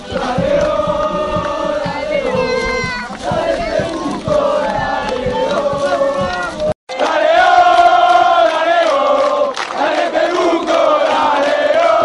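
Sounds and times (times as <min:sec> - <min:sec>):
low drum thumps: 0:00.0 - 0:06.8
crowd chanting in unison: 0:00.0 - 0:12.0.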